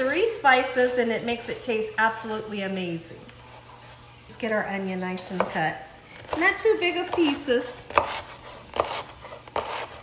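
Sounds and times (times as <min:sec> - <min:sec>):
knife chopping onion on board: 0:05.2 - 0:10.0.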